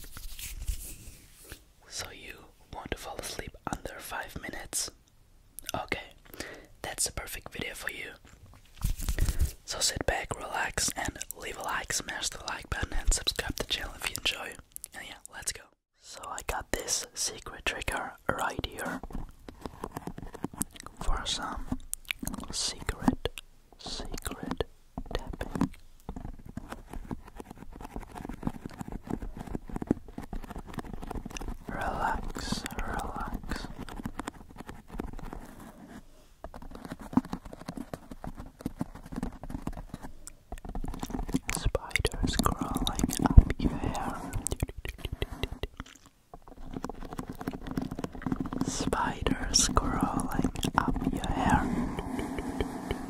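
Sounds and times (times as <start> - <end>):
breathy whispering: 1.8 - 5.0, 5.7 - 8.2, 9.3 - 19.0, 20.7 - 25.7, 31.4 - 33.8, 41.4 - 46.1, 48.4 - 53.0
wet mouth clicks: 5.6 - 6.4, 20.6 - 21.0, 21.8 - 22.5, 44.3 - 46.2.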